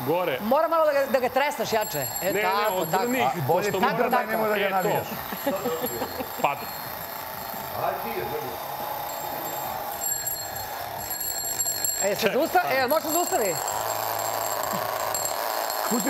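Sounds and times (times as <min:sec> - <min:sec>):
alarm clock bell ringing: 0:01.4 - 0:16.0.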